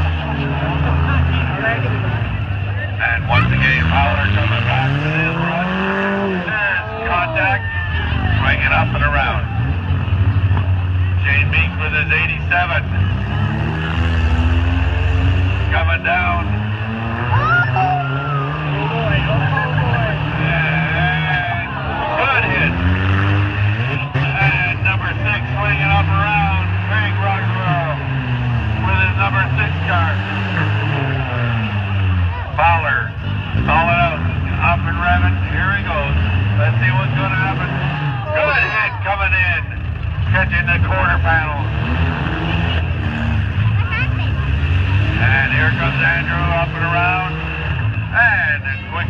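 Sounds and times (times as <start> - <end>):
car engines revving: 0.0 - 49.0.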